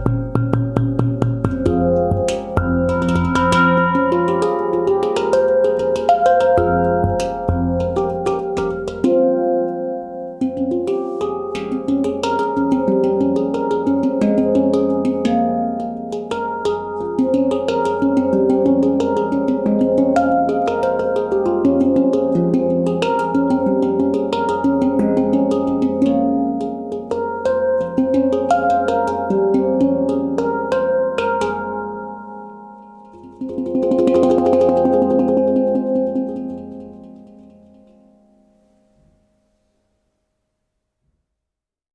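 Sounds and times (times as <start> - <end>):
handpan played by hand: 0.0 - 39.3.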